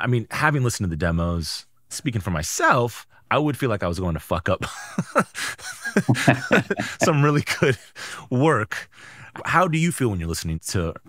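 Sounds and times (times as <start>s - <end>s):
person laughing: 4.6s - 7.9s
person speaking broken words: 6.1s - 7.3s.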